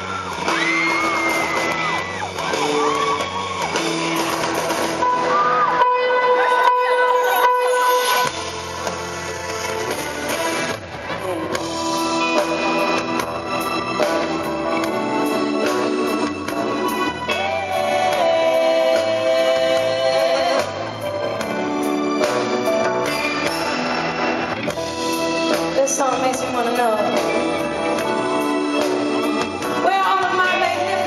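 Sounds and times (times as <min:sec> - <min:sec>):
live band with keyboard chords: 0:00.0 - 0:31.0.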